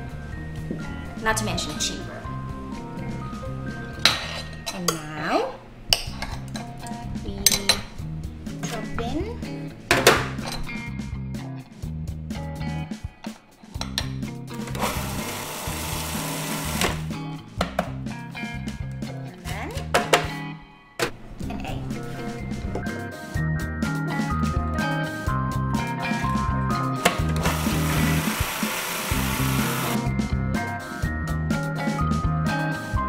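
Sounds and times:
background music: 0:00.0 - 0:33.0
food processor running: 0:14.6 - 0:17.0, 0:27.4 - 0:30.0.

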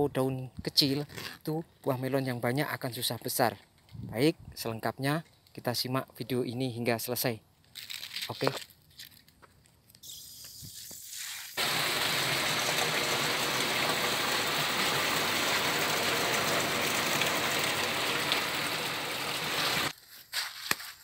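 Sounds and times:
water gushing into plastic drum: 0:11.6 - 0:19.9.

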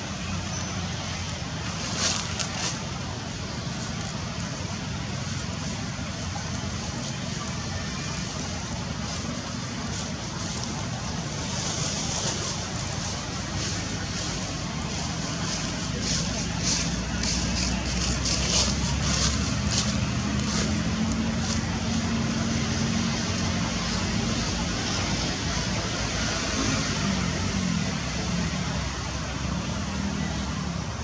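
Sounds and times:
vehicle engine drone: 0:00.0 - 0:31.0.

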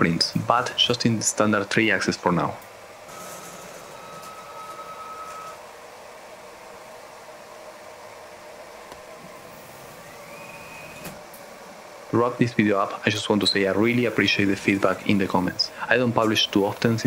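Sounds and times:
motor whine rising in pitch: 0:09.2 - 0:11.2
stepper motors whining: 0:09.2 - 0:11.3.

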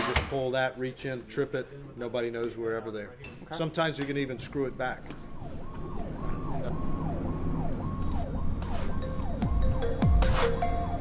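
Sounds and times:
fire engine electronic siren: 0:04.9 - 0:10.4
music with deep bass sweep: 0:08.2 - 0:11.0.

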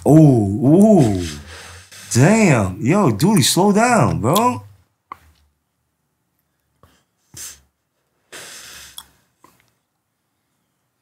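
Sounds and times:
person inhaling or exhaling smoke: 0:01.0 - 0:02.2, 0:07.2 - 0:09.3.

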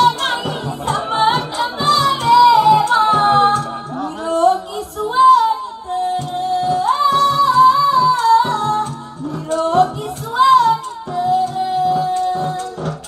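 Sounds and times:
instrumental backing with steady beat: 0:00.0 - 0:13.0
woman singing into a microphone: 0:00.0 - 0:13.0.

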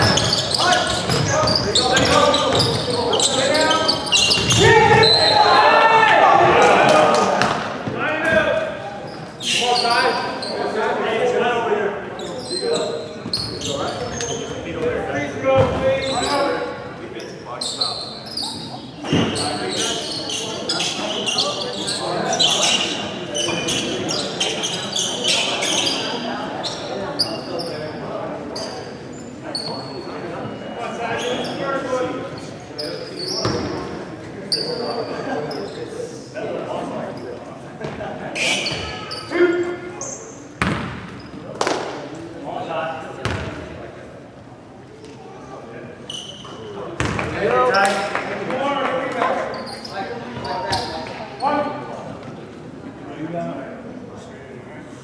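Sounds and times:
players' voices and shouts echoing: 0:00.0 - 0:55.0.

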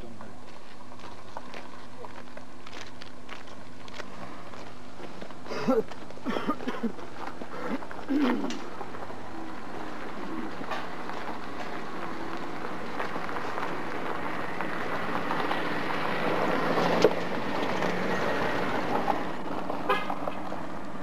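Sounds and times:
vehicle running noise: 0:00.0 - 0:21.0.

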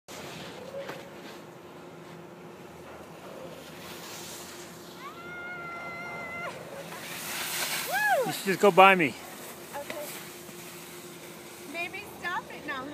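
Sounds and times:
skis sliding on snow: 0:03.5 - 0:12.9.

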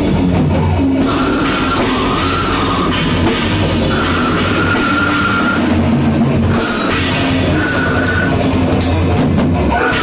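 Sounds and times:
death metal band playing live: 0:00.0 - 0:10.0.

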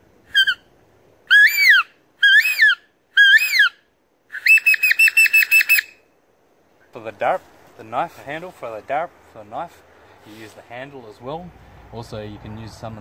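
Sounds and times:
leaf whistle imitating bird calls: 0:00.2 - 0:06.1.

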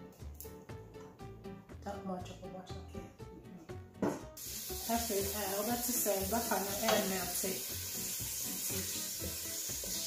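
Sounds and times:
background music: 0:00.0 - 0:10.0
knock on metal pot: 0:04.0 - 0:04.3
butter sizzling in a pot: 0:04.4 - 0:10.0.

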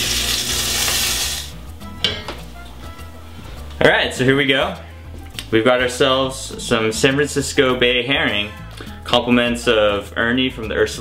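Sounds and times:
fish sizzling in hot oil: 0:00.0 - 0:01.6
background music: 0:00.0 - 0:11.0.

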